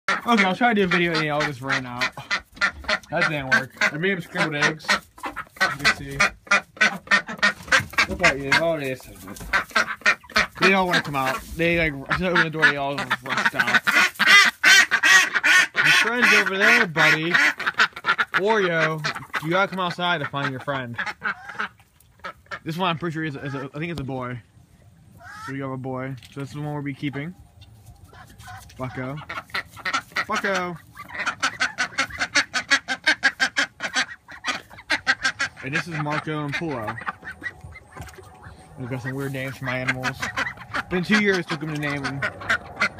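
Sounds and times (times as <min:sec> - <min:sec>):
ducklings quacking: 0:00.1 - 0:24.5, 0:25.1 - 0:42.9.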